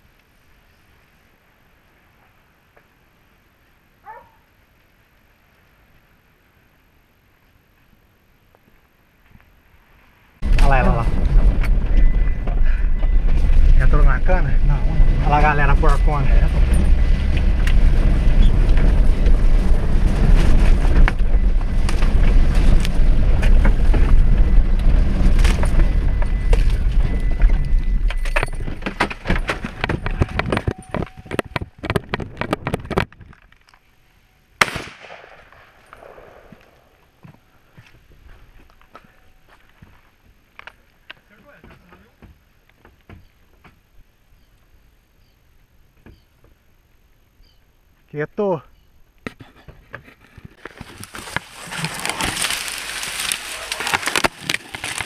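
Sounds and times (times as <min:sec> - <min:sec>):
vehicle engine and road noise: 0:00.0 - 0:34.7, 0:35.4 - 0:55.0
rattles and knocks: 0:16.0 - 0:33.7.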